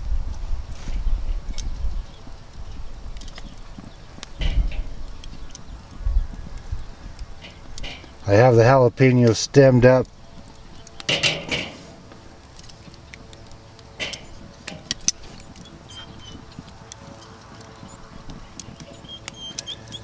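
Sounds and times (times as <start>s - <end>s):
metal tongs scraping on grill grate: 7.2s - 8.6s, 9.3s - 20.0s.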